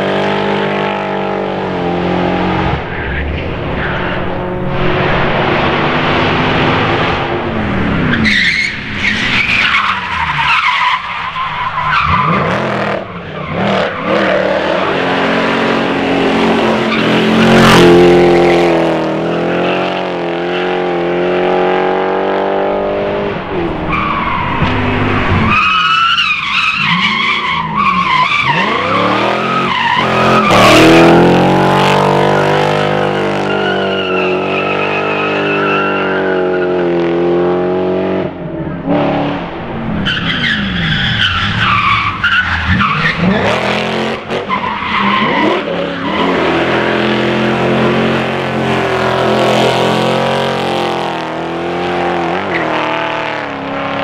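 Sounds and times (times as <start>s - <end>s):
car engine revving: 0.0s - 10.6s, 11.4s - 54.0s
tyres squealing: 23.6s - 31.2s.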